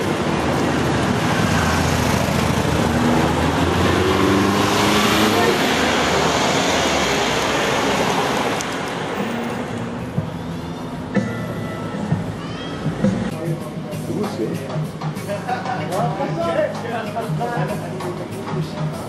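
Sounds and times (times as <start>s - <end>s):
motor vehicle passing: 0.0s - 11.3s.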